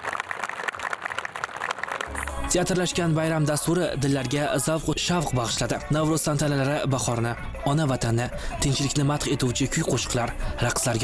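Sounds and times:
audience applauding: 0:00.0 - 0:02.5.

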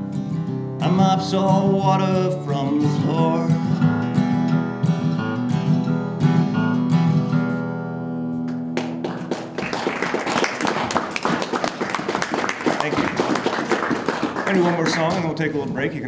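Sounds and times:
audience applauding: 0:08.8 - 0:15.5.

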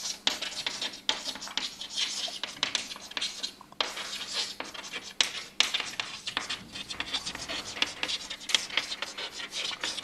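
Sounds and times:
chalk scratching on chalkboard: 0:00.0 - 0:10.0.

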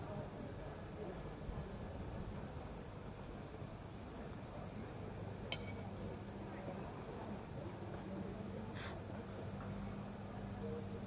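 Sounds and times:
low steady hum: 0:04.5 - 0:11.0
sharp clink: 0:05.5 - 0:05.9.

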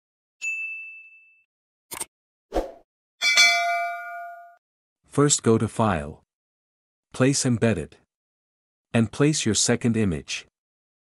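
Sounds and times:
bell chime with several tones: 0:00.4 - 0:01.5, 0:03.2 - 0:04.6
high ding: 0:00.4 - 0:01.5, 0:03.2 - 0:04.6.

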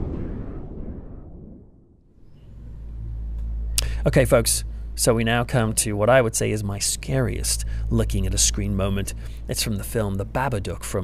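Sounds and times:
low outdoor rumble: 0:00.0 - 0:11.0
man speaking: 0:03.8 - 0:11.0.

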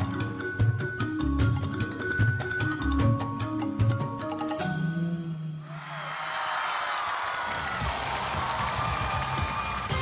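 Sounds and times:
audience cheering and clapping: 0:05.7 - 0:10.0
crowd shrieking: 0:05.7 - 0:10.0.

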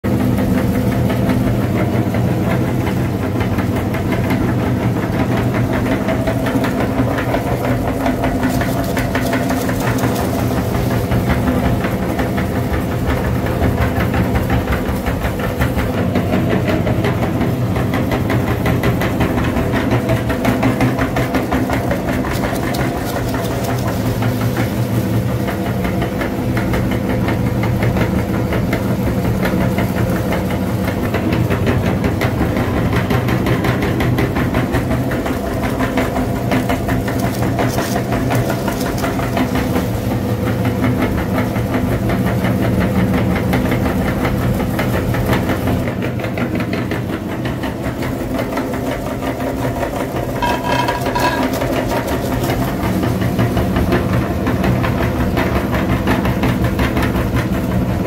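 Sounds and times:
meat grinder motor hum: 0:00.0 - 0:58.0.

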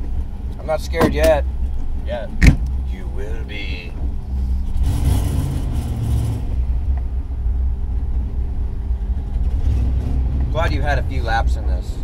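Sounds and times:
car engine rumbling in cabin: 0:00.0 - 0:12.0.

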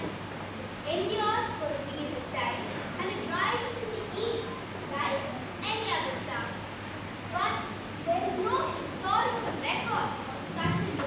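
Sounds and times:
low electrical hum: 0:00.0 - 0:11.0
young people speaking: 0:00.8 - 0:06.6, 0:07.2 - 0:11.0.

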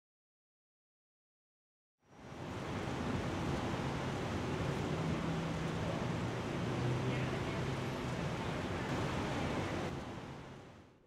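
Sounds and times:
traffic passing: 0:02.2 - 0:10.8.

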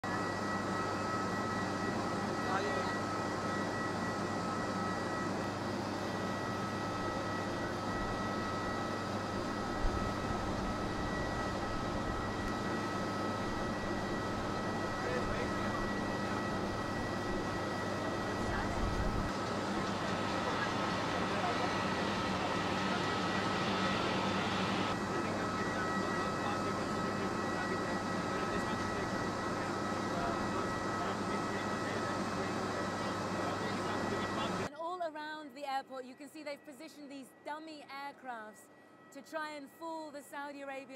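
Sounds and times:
distant aircraft engine: 0:00.0 - 0:34.7.

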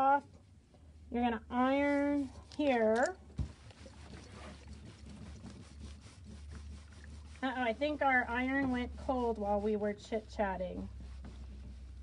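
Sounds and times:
steady low hum: 0:00.0 - 0:12.0
iron rubbing over fabric: 0:01.2 - 0:12.0.

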